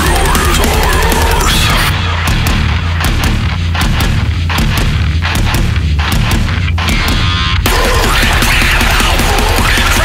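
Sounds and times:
distorted metal guitars and bass: 0.0 - 10.0
punchy drum hits: 2.2 - 10.0.

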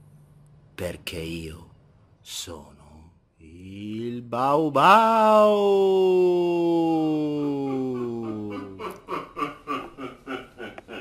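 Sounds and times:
man laughing: 6.0 - 11.0.

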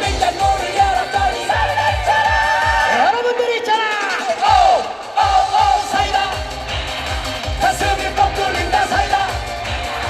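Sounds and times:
bass drum beat: 0.0 - 3.0, 4.4 - 10.0
live band music: 0.0 - 10.0
man singing: 0.0 - 10.0.

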